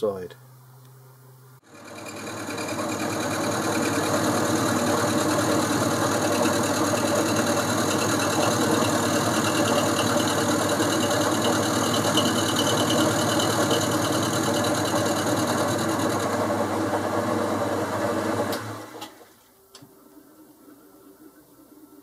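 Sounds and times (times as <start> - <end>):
lathe milling metal: 1.7 - 19.0.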